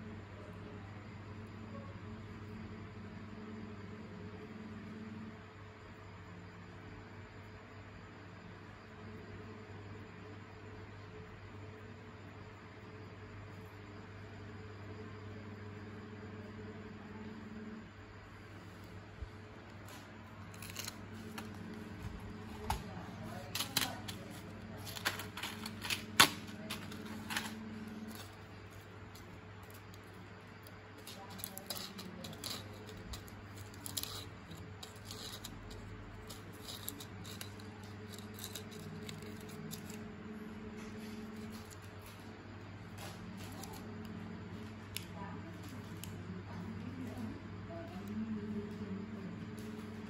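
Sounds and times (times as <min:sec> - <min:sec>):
faint low hum: 0:00.0 - 0:50.0
small clicks and handling sounds: 0:19.6 - 0:40.0, 0:40.8 - 0:42.3, 0:42.9 - 0:46.2.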